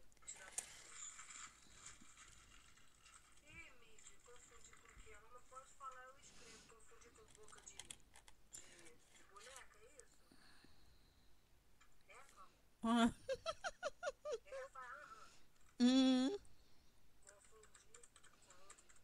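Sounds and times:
faint voice: 0:14.4 - 0:16.4.

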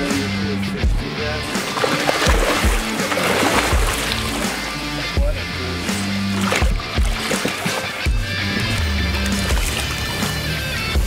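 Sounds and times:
background music with drum beat: 0:00.0 - 0:11.0
water splashing: 0:01.5 - 0:05.2, 0:06.0 - 0:10.7.

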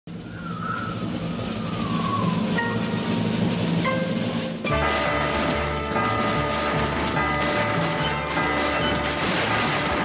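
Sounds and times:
cartoon wind howling: 0:00.1 - 0:04.6.

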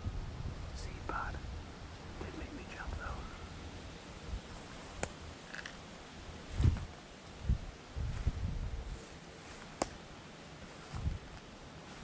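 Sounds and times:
person whispering: 0:00.8 - 0:01.4, 0:02.2 - 0:03.5.

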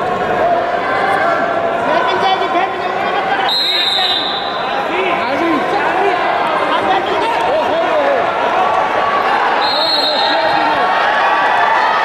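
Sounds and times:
crowd noise: 0:00.0 - 0:12.0
people shouting in echoing hall: 0:00.0 - 0:12.0.

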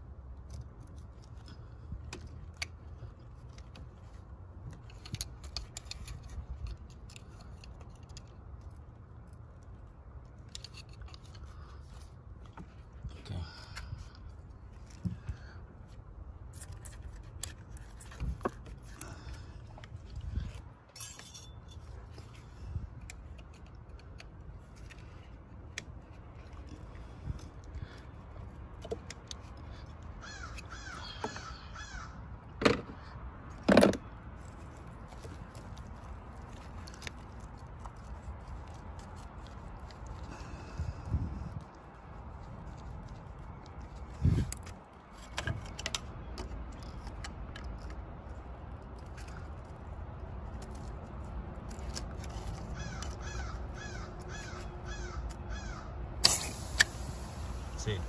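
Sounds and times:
crows cawing: 0:29.6 - 0:32.3, 0:52.8 - 0:56.0.

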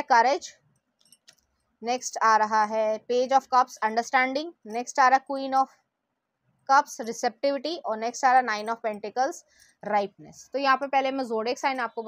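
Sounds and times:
woman speaking: 0:00.0 - 0:00.5, 0:01.8 - 0:05.7, 0:06.7 - 0:12.0.

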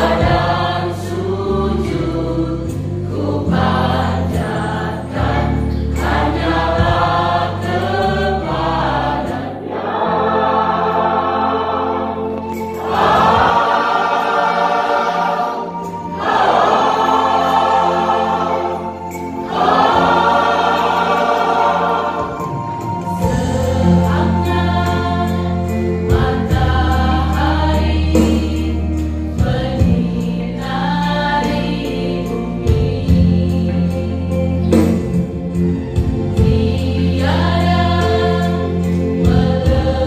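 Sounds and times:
church choir singing: 0:00.0 - 0:40.0.

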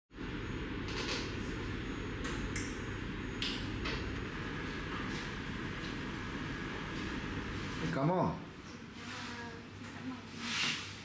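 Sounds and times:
low background hum: 0:00.1 - 0:11.0.

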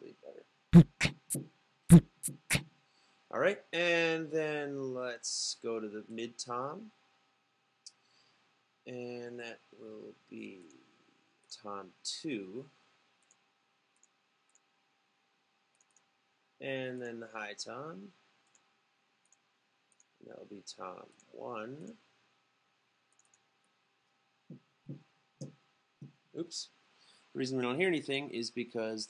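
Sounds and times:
beatboxed kick drum thumps: 0:00.8 - 0:02.6
closed hi-hat ticks: 0:00.8 - 0:02.6
faint computer mouse clicks: 0:15.7 - 0:16.1, 0:23.1 - 0:23.4.

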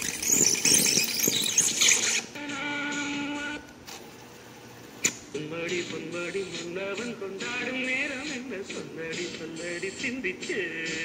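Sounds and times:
cassette deck squealing: 0:00.0 - 0:03.7.

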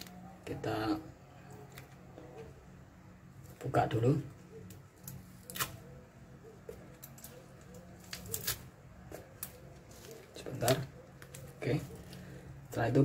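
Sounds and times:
low steady hum: 0:00.0 - 0:13.0
packet crinkling and ripping: 0:07.0 - 0:12.3.

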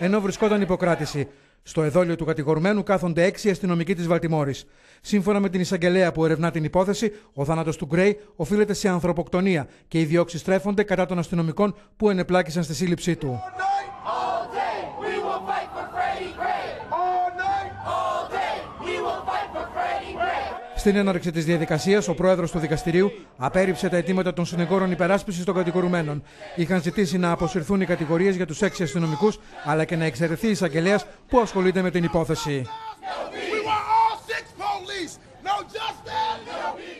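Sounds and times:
man shouting: 0:00.0 - 0:01.2, 0:13.3 - 0:15.9, 0:16.8 - 0:18.0, 0:20.7 - 0:26.0, 0:26.6 - 0:29.4, 0:31.4 - 0:36.5
crowd of protesters chanting: 0:00.0 - 0:01.3, 0:13.4 - 0:30.2, 0:32.4 - 0:36.9.

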